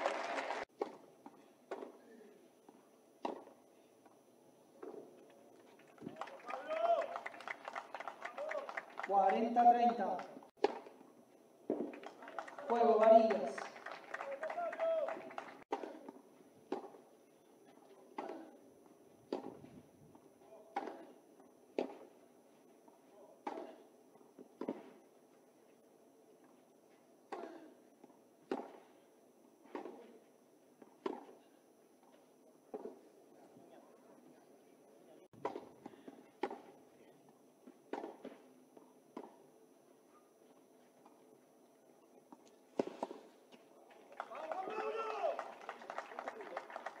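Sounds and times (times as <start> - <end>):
tennis racket hitting ball: 3.2 - 3.5, 10.6 - 11.0, 15.7 - 17.0, 19.3 - 19.6, 20.7 - 21.1, 21.8 - 22.1, 28.5 - 28.9, 29.7 - 30.1, 30.8 - 31.4, 35.4 - 36.7, 37.9 - 38.3.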